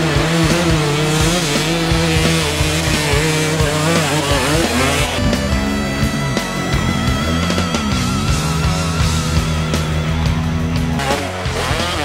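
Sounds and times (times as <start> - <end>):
dirt bike engine revving: 0.0 - 12.0
rock music: 0.0 - 12.0.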